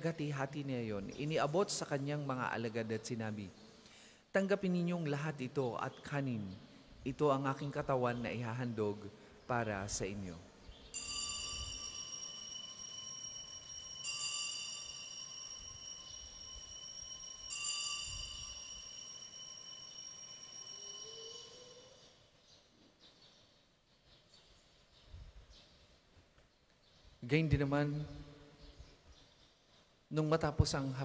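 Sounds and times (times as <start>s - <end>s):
altar bells ringing: 10.9s - 22.2s.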